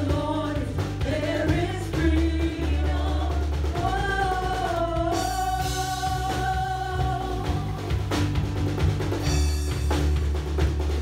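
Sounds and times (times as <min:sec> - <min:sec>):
women singing together: 0:00.0 - 0:08.1
drum kit: 0:00.0 - 0:11.0
guitar: 0:00.0 - 0:11.0.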